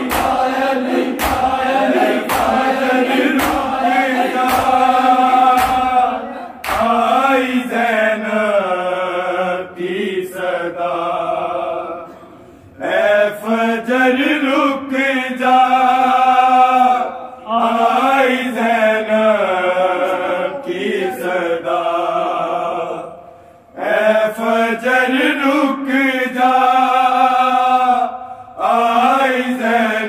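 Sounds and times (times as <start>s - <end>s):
men chanting a lament: 0.0s - 30.0s.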